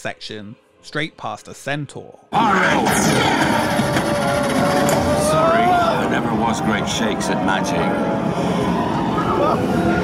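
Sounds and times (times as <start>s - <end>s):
roller coaster ride rumble: 2.6s - 10.0s.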